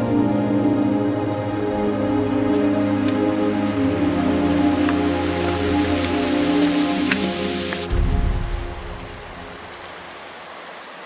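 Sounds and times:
background music: 0.0s - 9.8s
rushing river water: 0.0s - 11.0s.

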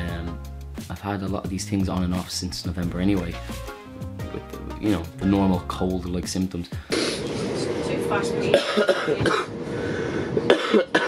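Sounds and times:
man coughing: 8.5s - 9.6s, 10.5s - 11.0s.

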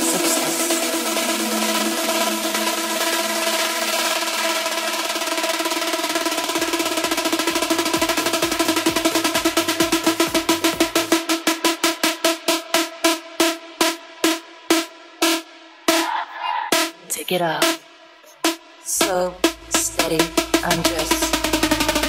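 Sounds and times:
rapid drum roll: 0.0s - 17.0s, 18.4s - 22.0s
electronic dance music: 0.0s - 22.0s.

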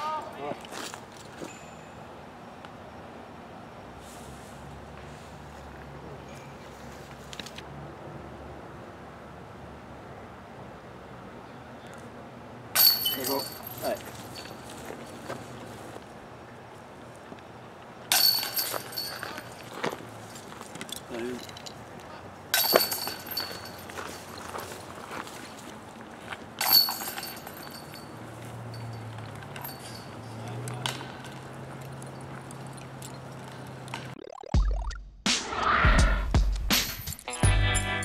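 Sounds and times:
disc hitting metal basket chains: 12.7s - 14.8s, 18.1s - 19.8s, 22.5s - 24.6s, 26.6s - 31.4s, 36.8s - 37.4s.

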